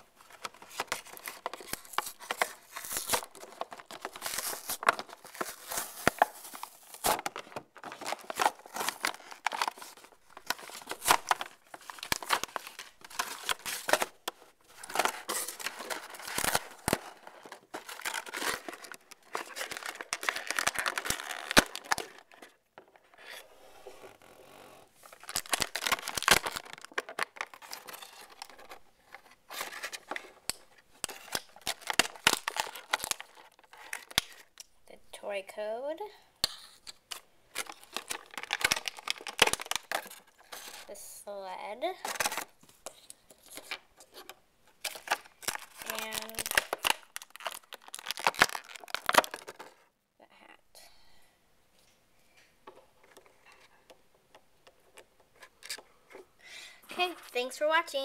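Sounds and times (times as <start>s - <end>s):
plastic packaging crinkling: 0.0s - 22.6s, 25.0s - 34.7s, 36.8s - 41.0s, 42.0s - 49.8s.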